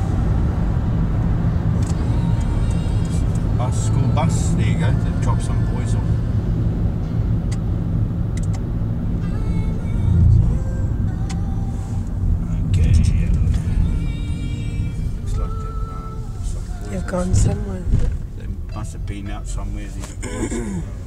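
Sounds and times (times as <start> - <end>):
car engine and tyres rumbling: 0.0 - 21.0.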